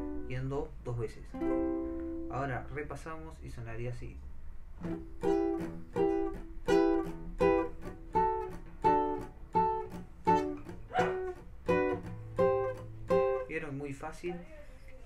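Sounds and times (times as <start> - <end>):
classical guitar strumming: 0.0 - 0.4, 1.3 - 2.6, 4.8 - 13.8.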